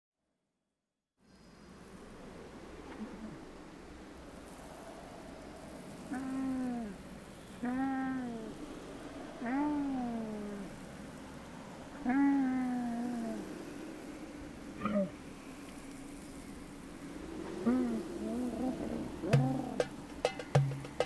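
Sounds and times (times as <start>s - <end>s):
animal drawn-out cries: 6.1s - 7.0s, 7.6s - 8.6s, 9.2s - 10.8s, 12.0s - 13.7s, 14.8s - 15.2s, 17.5s - 20.0s.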